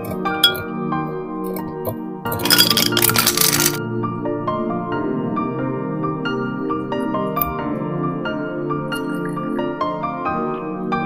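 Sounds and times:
ice cubes clinking into a glass: 0.0s - 0.6s, 2.3s - 3.8s
soft background music: 0.0s - 11.0s.

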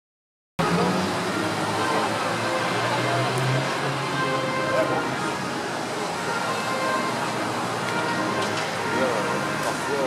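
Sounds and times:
crowd noise: 0.6s - 10.0s
traffic: 0.6s - 10.0s.

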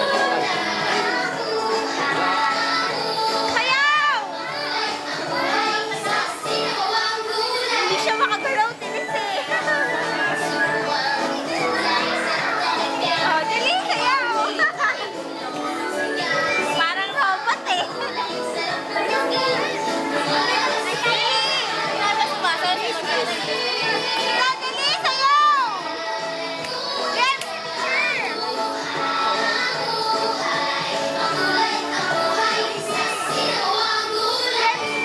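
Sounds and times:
children chattering and calling: 0.0s - 35.0s
children's dance music: 0.0s - 35.0s.

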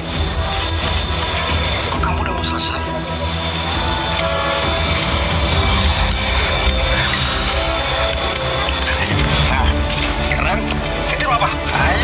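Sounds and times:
deep low rumble: 0.0s - 12.0s
sustained music tones: 0.0s - 12.0s.

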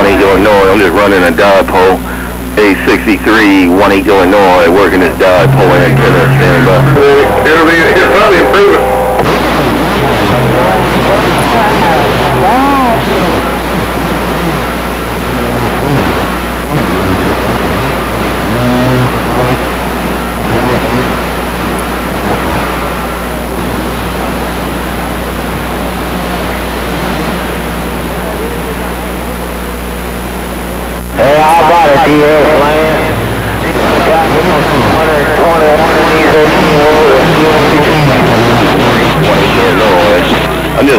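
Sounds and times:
garbled distant radio voices: 0.0s - 40.9s
radio static hiss: 0.0s - 40.9s.

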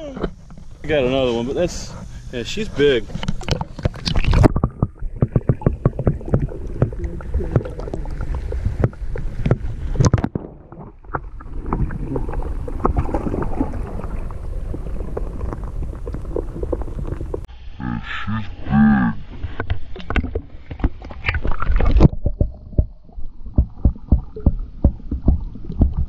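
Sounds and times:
muffled underwater sound: 1.8s - 20.6s.

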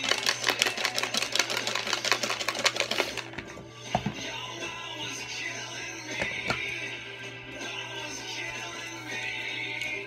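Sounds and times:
plastic box shaken with rattling pieces: 0.0s - 3.4s.

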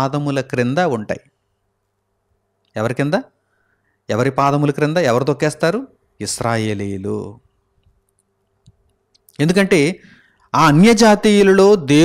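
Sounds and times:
man preaching: 0.0s - 1.2s, 4.1s - 7.4s, 9.3s - 12.0s
faint steady hum: 0.0s - 12.0s
faint small clicks: 7.8s - 9.4s.

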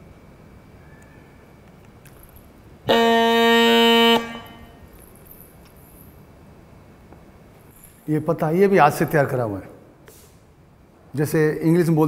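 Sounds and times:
bagpipe held reed note: 2.9s - 4.9s.

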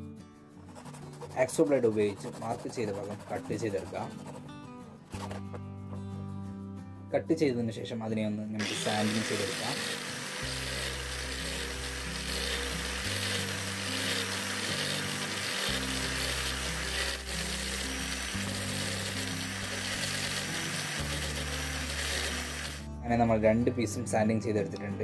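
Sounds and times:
power tool cutting shell: 8.6s - 22.9s
background music with bass notes: 10.6s - 25.0s.

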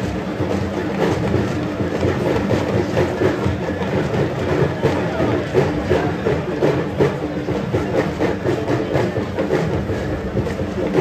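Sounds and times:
large crowd talking: 0.0s - 11.0s.

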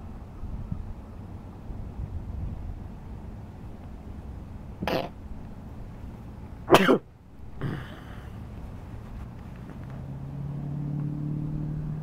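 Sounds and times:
person coughing: 4.8s - 5.1s, 6.7s - 8.4s.

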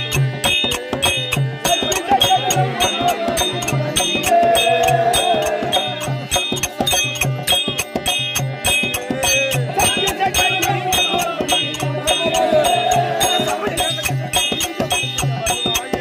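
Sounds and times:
drum and percussion beat: 0.0s - 16.0s
wavering melodic line: 1.1s - 16.0s.

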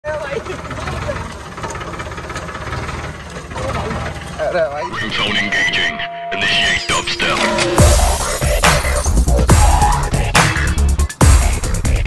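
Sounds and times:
tractor diesel engine rumbling: 0.0s - 12.0s
person speaking: 4.8s - 7.8s.

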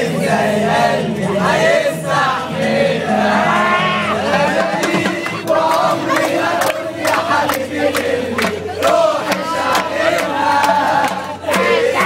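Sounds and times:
men chanting together: 0.0s - 12.0s
hand clapping: 5.2s - 11.7s.

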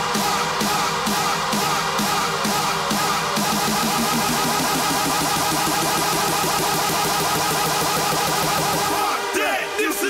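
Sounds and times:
buzzy repeating synth: 1.1s - 10.0s.

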